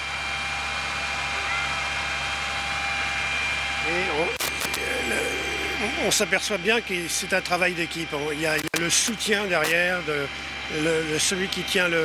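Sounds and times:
water pump running: 0:00.0 - 0:12.0
thin high whine: 0:01.2 - 0:12.0.

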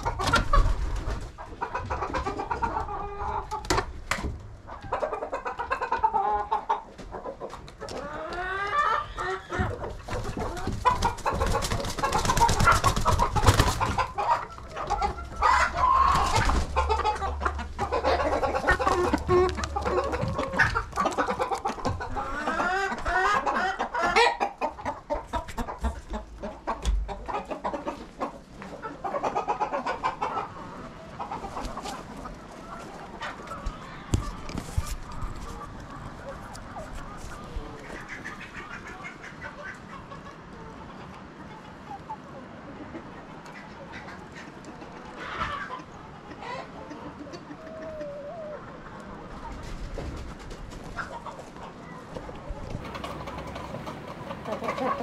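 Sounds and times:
hens clucking and squawking: 0:00.0 - 0:55.0.

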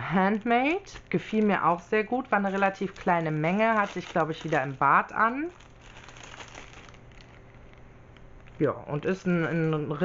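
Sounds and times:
plastic bag crinkling: 0:00.0 - 0:08.8.

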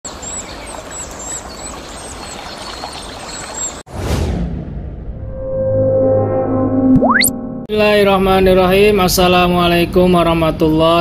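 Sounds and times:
running water: 0:00.1 - 0:03.8
small birds chirping: 0:00.1 - 0:03.8.

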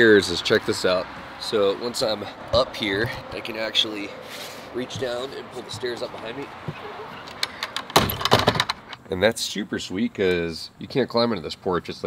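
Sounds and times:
wooden stairs clattering: 0:04.8 - 0:06.8.

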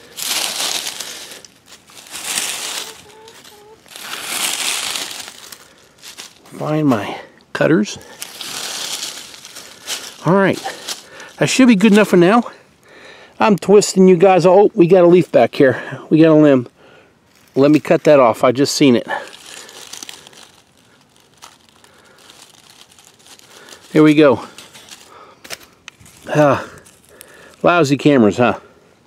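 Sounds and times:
dry leaves rustling and crackling: 0:00.0 - 0:12.5, 0:17.3 - 0:28.1.

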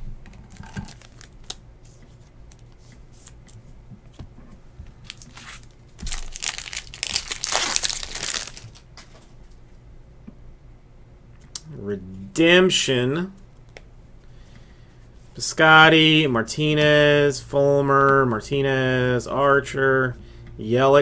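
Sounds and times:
wrapper crinkling tear: 0:00.3 - 0:01.6, 0:05.0 - 0:08.9
cards being handled: 0:00.3 - 0:03.7.

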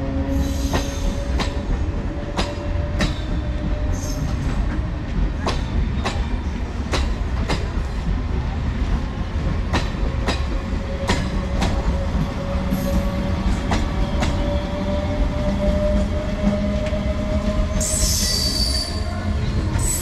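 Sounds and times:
train rumbling over rails: 0:00.0 - 0:20.0.

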